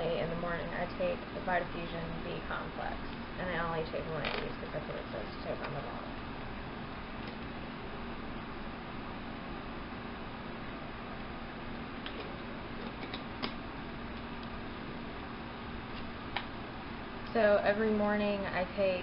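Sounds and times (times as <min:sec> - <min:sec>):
faint low hum: 0:00.0 - 0:19.0.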